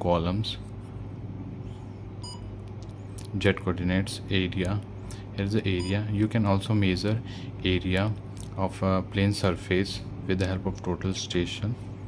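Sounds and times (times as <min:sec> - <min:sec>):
steady low hum: 0:00.0 - 0:12.0
electronic key beep: 0:02.2 - 0:02.5, 0:05.8 - 0:06.0.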